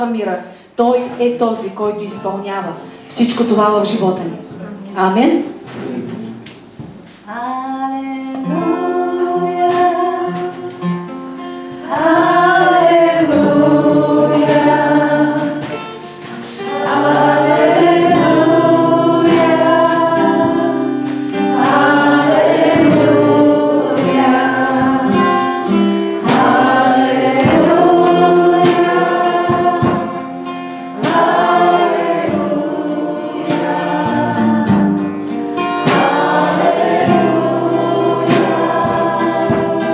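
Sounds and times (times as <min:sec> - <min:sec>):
acoustic guitar: 0:00.0 - 0:39.9
congregation singing a hymn: 0:05.4 - 0:39.9
woman singing into microphone: 0:07.2 - 0:11.0, 0:11.8 - 0:15.7, 0:16.6 - 0:30.4, 0:31.0 - 0:35.2, 0:35.8 - 0:39.9.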